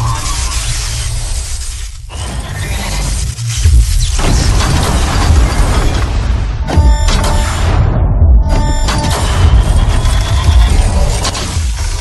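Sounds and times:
heavy bass music: 6.6s - 12.0s.

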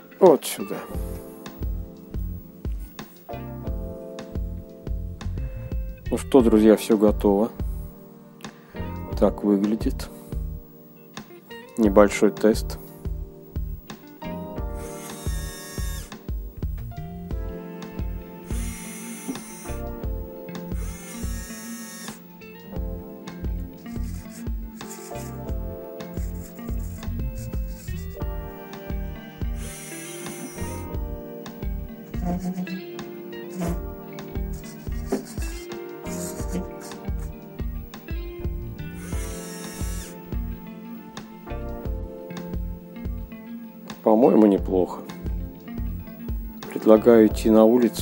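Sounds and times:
background music with steady beat: 0.0s - 48.0s
small electric motors whirring: 14.8s - 16.2s, 18.4s - 19.9s, 20.7s - 22.3s, 23.5s - 25.4s, 26.2s - 28.2s, 28.9s - 31.0s, 33.5s - 33.8s, 34.4s - 37.3s, 38.9s - 40.2s.

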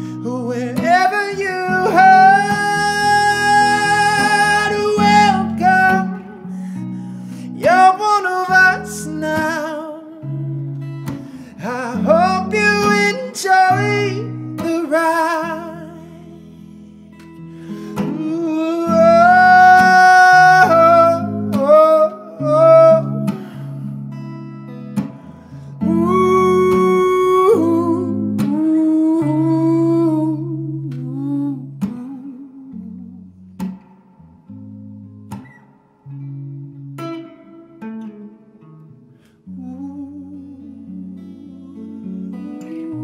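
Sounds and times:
man singing wordlessly: 0.0s - 6.5s, 7.4s - 10.5s, 11.3s - 16.5s, 18.0s - 23.7s, 25.8s - 33.2s, 39.5s - 43.0s
electric guitar: 0.0s - 43.0s.

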